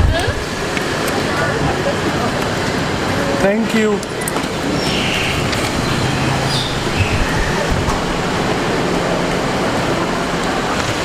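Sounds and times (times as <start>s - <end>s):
bus engines idling: 0.0s - 11.0s.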